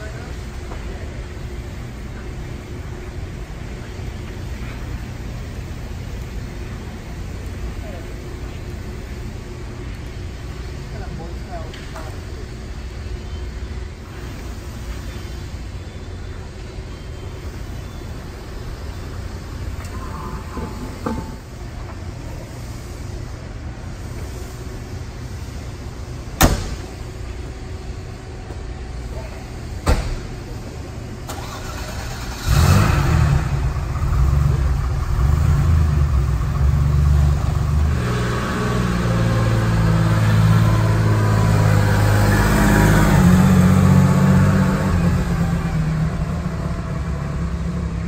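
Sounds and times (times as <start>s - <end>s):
car engine starting and idling: 30.2s - 48.0s.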